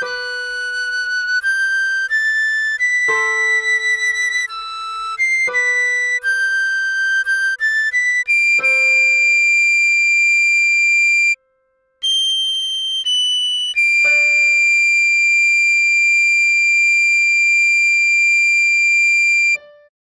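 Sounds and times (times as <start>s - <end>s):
recorder playing slow melody: 0.0s - 11.4s, 12.0s - 19.9s.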